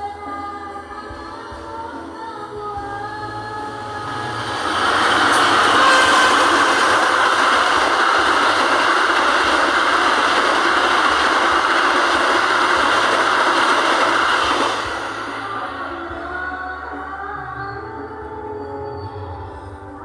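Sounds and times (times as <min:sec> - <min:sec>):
passenger train rumbling past: 0:02.5 - 0:18.2.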